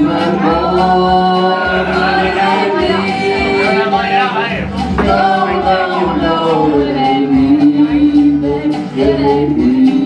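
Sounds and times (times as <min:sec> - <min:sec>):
woman and man singing: 0:00.0 - 0:04.1, 0:04.8 - 0:10.0.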